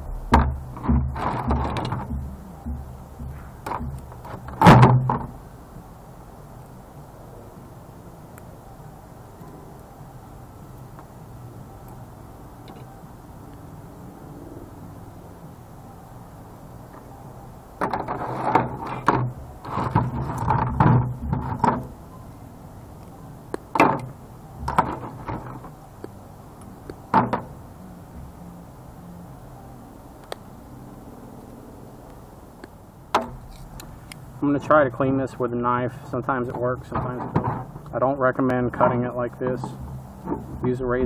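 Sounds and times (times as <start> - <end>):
monitor parts clattering and scraping: 0.3 - 5.4, 17.8 - 22.0, 23.8 - 25.8, 36.2 - 37.9, 38.7 - 40.7.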